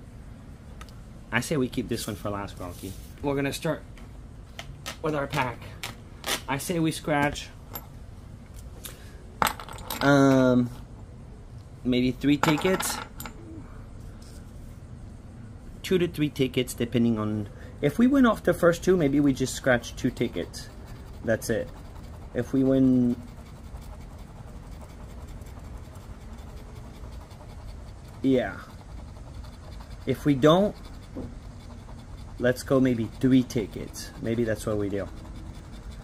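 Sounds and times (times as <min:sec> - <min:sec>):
metal coins clinking: 0:09.4 - 0:10.4
coin scratching lottery ticket: 0:17.9 - 0:36.0.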